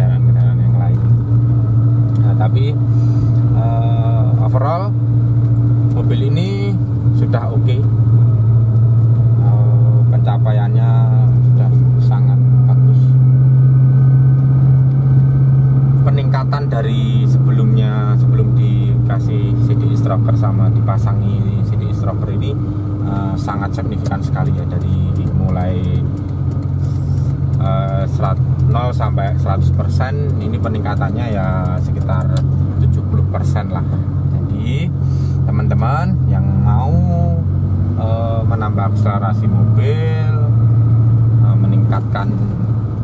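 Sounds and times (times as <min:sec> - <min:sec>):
car engine droning in cabin: 0:00.0 - 0:43.0.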